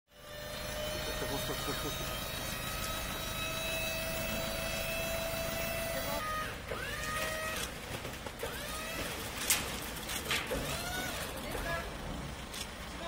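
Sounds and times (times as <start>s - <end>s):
hydraulic tipper whining: 0.1s - 13.0s.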